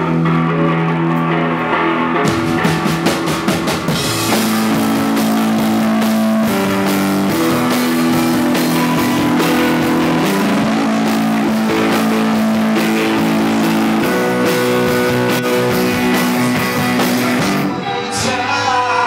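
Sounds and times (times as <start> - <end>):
rock band playing instrumental: 0.0 - 19.0
drum beat with cymbals: 2.3 - 17.7.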